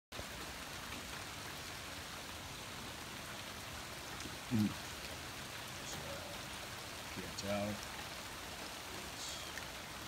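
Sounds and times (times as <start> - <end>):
heavy rain: 0.1 - 10.0
raindrops on pooled water: 0.1 - 10.0.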